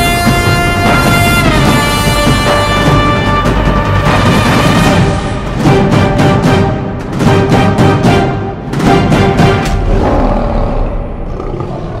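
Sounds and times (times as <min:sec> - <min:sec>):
lion roar: 0:09.7 - 0:12.0.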